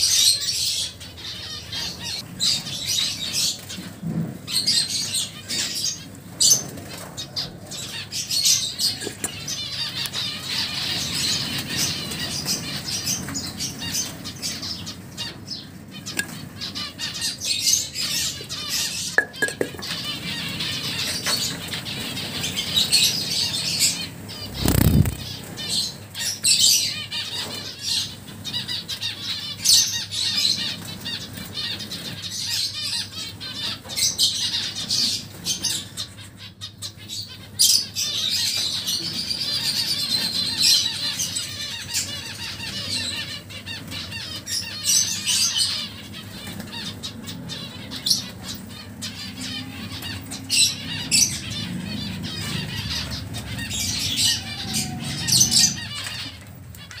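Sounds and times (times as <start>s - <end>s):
birds chirping and squawking: 0.0s - 57.0s
wing fluttering: 24.3s - 25.8s.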